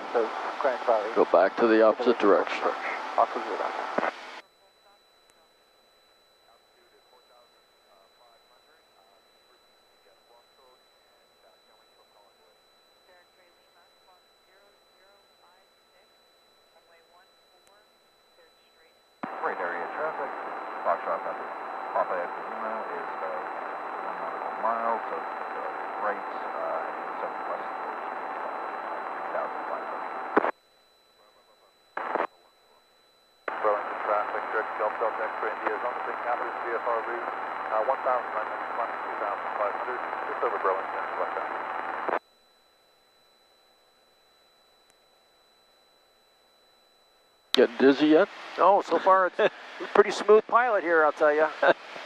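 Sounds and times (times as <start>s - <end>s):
radio blip: 0.0s - 4.4s, 19.2s - 30.5s, 31.1s - 32.9s, 33.5s - 42.2s, 47.6s - 52.0s
radio voice transmissions: 0.0s - 5.1s, 19.2s - 30.5s, 31.1s - 32.9s, 33.5s - 42.2s, 47.6s - 52.0s.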